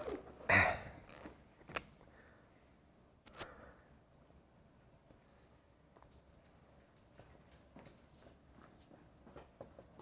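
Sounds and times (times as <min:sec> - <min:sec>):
marker writing on whiteboard: 0:02.6 - 0:10.0.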